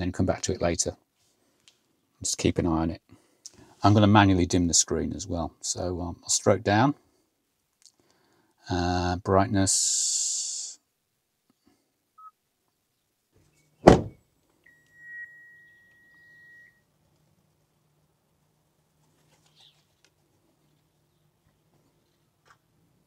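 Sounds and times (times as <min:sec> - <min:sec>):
car door shutting: 0:13.8 - 0:14.2.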